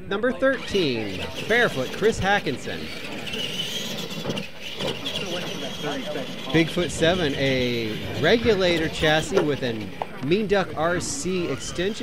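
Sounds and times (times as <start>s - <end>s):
electric motors whining: 0.0s - 12.0s.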